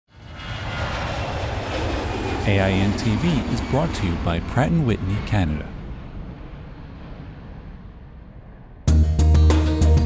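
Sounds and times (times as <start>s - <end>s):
jet engine rumble: 0.1s - 8.9s.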